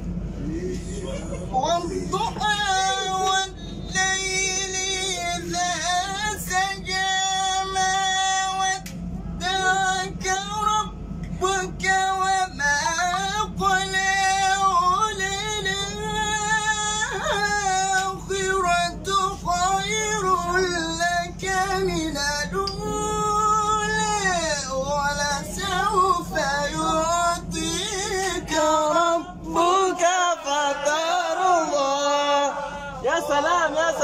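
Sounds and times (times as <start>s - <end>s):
young man chanting recitation: 1.6s - 8.8s, 9.4s - 34.0s.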